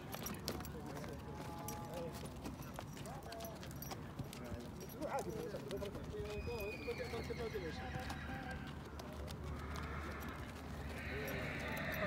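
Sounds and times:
horse hooves on sand: 0.0s - 12.0s.

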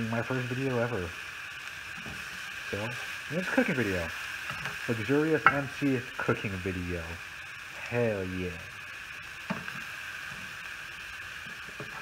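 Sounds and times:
meat sizzling in a pan: 0.0s - 12.0s.

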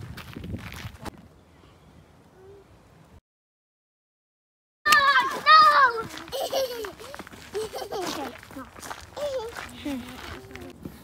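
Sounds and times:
footsteps on gravel: 0.0s - 1.2s, 4.9s - 11.0s
small children chattering: 4.9s - 10.9s.

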